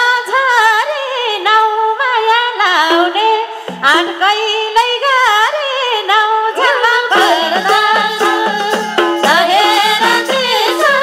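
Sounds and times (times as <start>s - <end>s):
woman singing folk melody: 0.0s - 11.0s
folk band with light drums: 6.6s - 11.0s.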